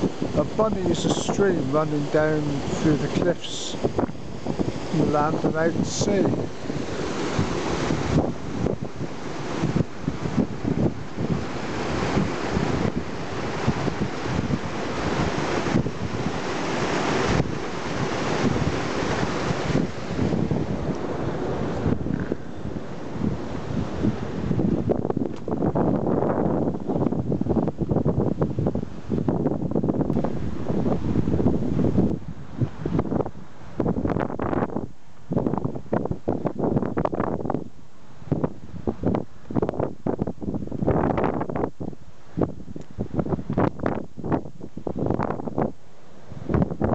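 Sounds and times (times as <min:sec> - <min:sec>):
stream water rushing: 0:00.0 - 0:27.9
wind buffeting microphone: 0:00.0 - 0:46.9.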